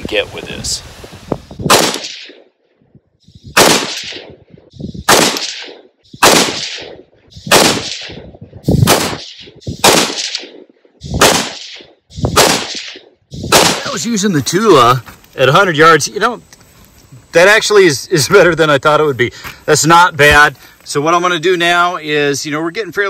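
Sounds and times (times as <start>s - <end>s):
rifle shots with echo: 1.7s - 2.6s, 3.5s - 14.0s.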